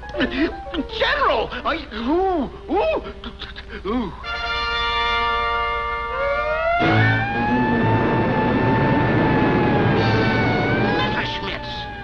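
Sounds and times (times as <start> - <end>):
cartoon soundtrack music: 0.1 - 12.0
sustained high tone: 6.2 - 12.0
tone gliding upward: 6.2 - 12.0.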